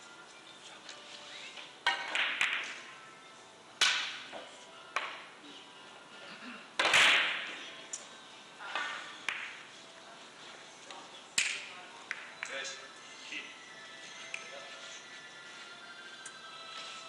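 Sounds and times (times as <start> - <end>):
billiard balls clicking: 8.8 - 9.6.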